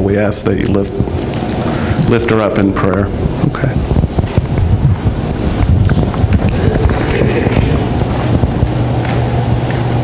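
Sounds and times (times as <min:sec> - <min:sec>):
constant low hum: 0:00.0 - 0:10.0
low rumbling noise: 0:00.0 - 0:10.0.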